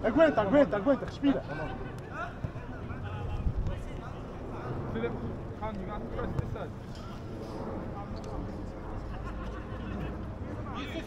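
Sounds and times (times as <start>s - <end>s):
wind rumble on microphone: 2.8s - 10.9s.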